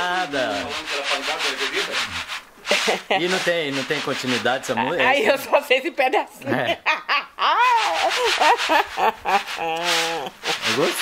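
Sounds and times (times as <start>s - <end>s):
people talking and laughing: 2.0s - 11.0s.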